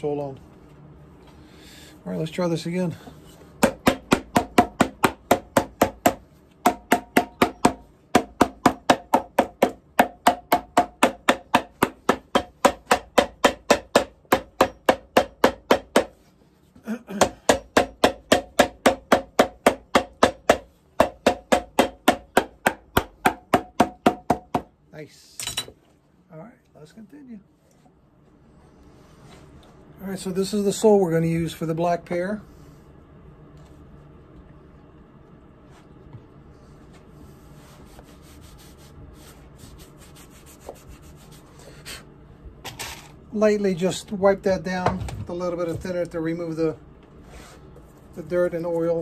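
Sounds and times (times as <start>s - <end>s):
hammer pounding leather: 3.6s - 16.2s, 17.1s - 24.7s.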